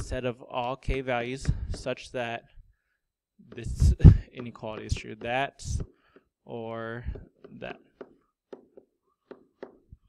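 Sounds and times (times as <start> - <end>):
stylus tapping on tablet screen: 3.5 - 10.0.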